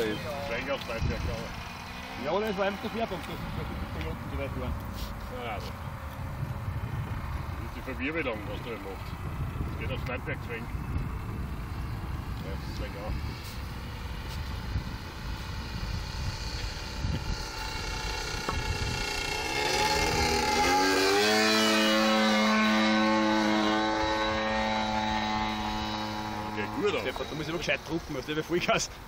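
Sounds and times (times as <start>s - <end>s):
model plane engine buzzing: 0.0s - 29.0s.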